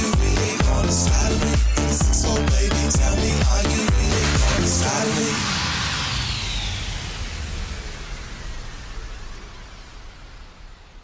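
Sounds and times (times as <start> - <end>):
dance-pop beat: 0.0 - 5.8
hiss-like wash of noise: 4.7 - 11.0.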